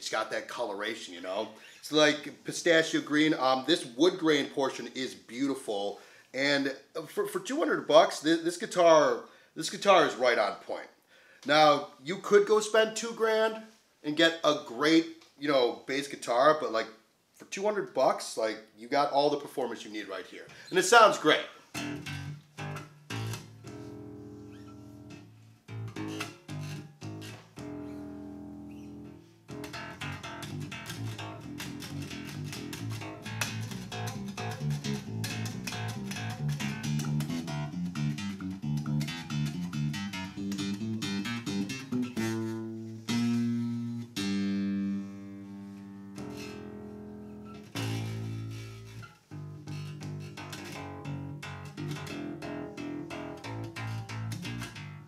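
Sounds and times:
electric bass plucked: 21.6s - 55.0s.

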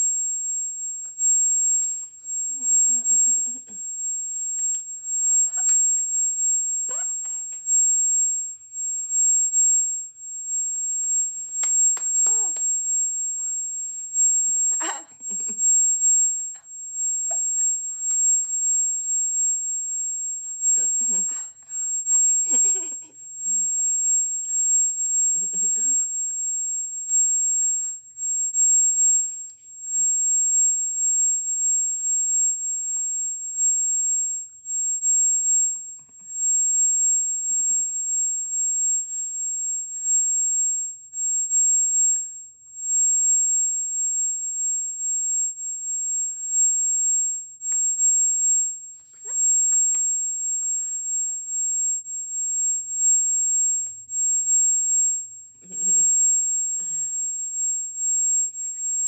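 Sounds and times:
high-pitched steady whine: 0.0s - 59.0s.

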